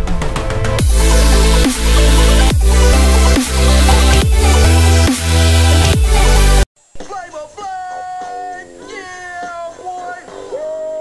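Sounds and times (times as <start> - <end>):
man yelling high-pitched: 7.1 - 11.0.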